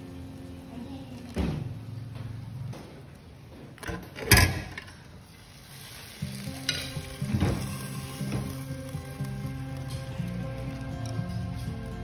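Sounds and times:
background music low notes: 5.6 - 12.0.

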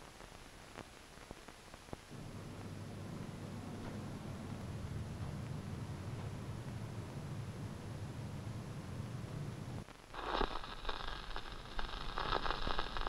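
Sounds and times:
vinyl record crackle and pops: 0.0 - 13.0
low room hum: 1.9 - 13.0.

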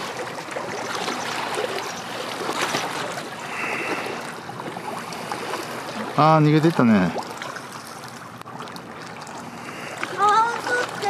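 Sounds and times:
small waves lapping: 0.0 - 11.0.

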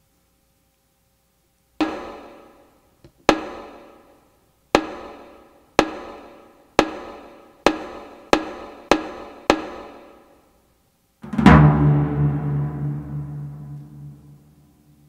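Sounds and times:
percussive struck hits ringing: 1.8 - 2.5, 11.2 - 14.6.

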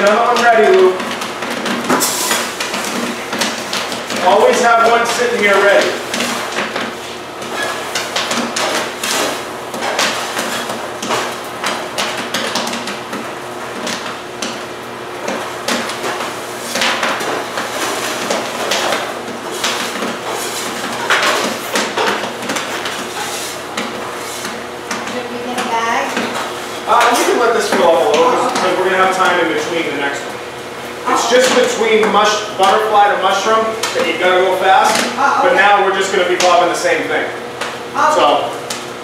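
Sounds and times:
popcorn popping: 0.0 - 39.0
steady low hum: 0.0 - 39.0.

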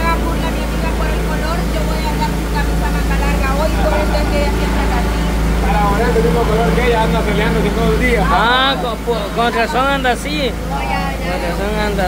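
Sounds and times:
loud low motor drone: 0.0 - 12.0
people talking: 0.0 - 12.0.

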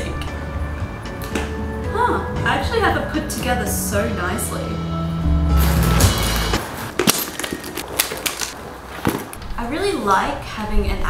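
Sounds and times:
handbag items handled and set down: 5.6 - 9.5.

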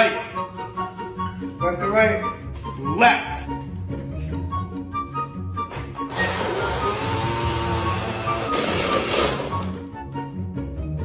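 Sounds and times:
background music with steady beat: 0.0 - 11.0
blender motor running: 6.1 - 9.8.

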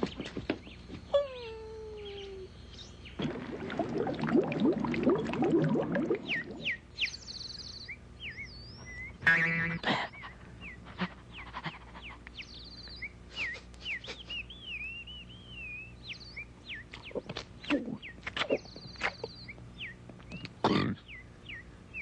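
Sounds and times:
bird-like whistled chirps: 6.2 - 9.2, 12.4 - 20.5, 21.1 - 22.0.

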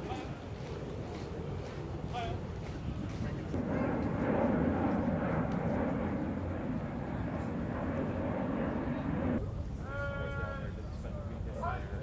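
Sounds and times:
murmur of voices outdoors: 0.0 - 12.0.

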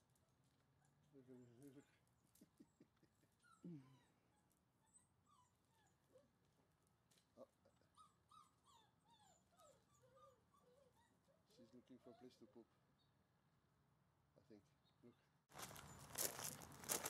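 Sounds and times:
puppies whimpering and squeaking: 0.4 - 6.4, 7.4 - 13.1.

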